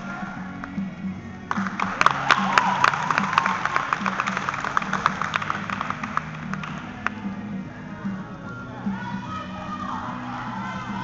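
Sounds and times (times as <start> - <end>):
background music with low line: 0.0 - 11.0
audience clapping: 1.5 - 7.2.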